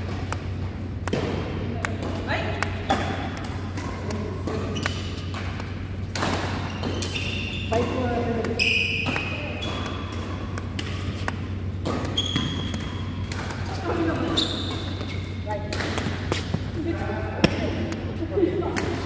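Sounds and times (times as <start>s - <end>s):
racket hitting shuttlecock: 0.0s - 16.7s
steady low hum: 0.0s - 19.0s
shoes squeaking on court floor: 2.9s - 17.7s.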